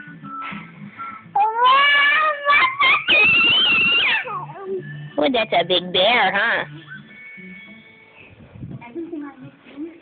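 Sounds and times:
toddler squealing: 1.4s - 4.5s
toddler yelping: 1.4s - 4.6s.

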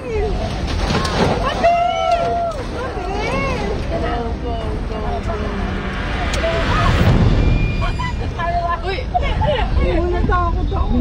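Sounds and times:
people talking: 0.0s - 7.2s, 7.8s - 11.0s.

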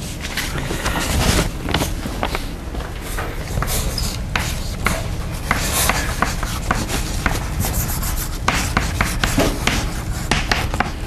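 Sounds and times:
steady low hum: 0.0s - 11.0s
chalk scratching on chalkboard: 3.4s - 11.0s
chalk tapping on board: 3.6s - 11.0s.

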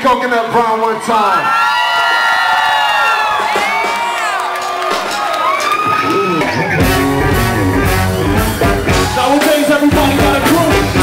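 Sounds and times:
crowd cheering: 0.0s - 11.0s
live band playing: 3.1s - 11.0s
trumpet: 6.8s - 11.0s.

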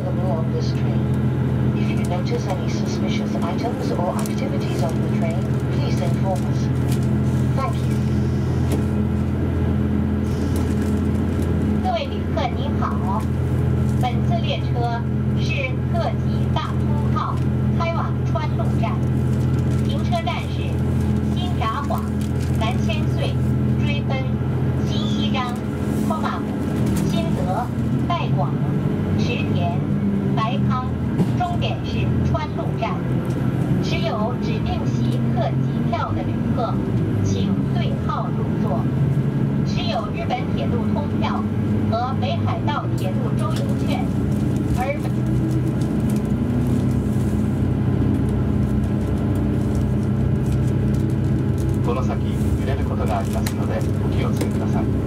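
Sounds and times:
diesel train engines idling: 0.0s - 55.0s.

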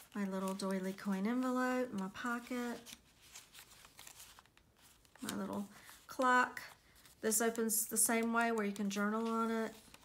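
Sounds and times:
paper pages rustling: 0.0s - 10.0s
soft paper ticks: 7.4s - 10.0s.

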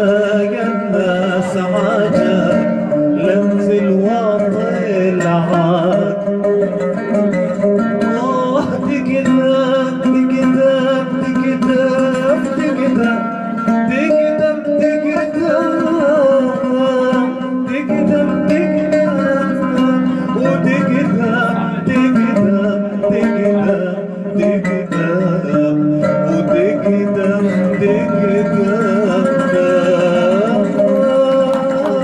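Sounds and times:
man singing folk song: 0.0s - 32.0s
oud playing: 0.0s - 32.0s.

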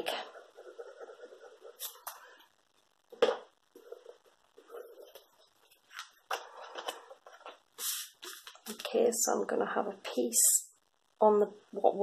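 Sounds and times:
paper rustling: 5.1s - 8.9s.

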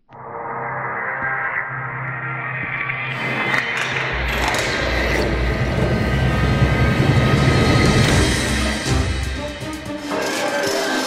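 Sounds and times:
low metallic rumbling: 3.1s - 9.4s.

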